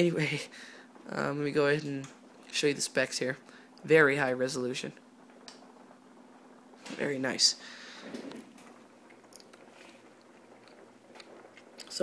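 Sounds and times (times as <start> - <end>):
laptop humming: 0.0 - 12.0.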